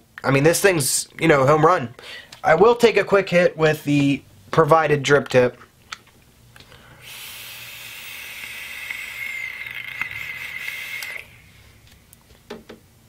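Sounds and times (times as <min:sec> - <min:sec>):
vaporizer coil sizzling: 0:05.1 - 0:12.5
air hissing: 0:06.8 - 0:11.8.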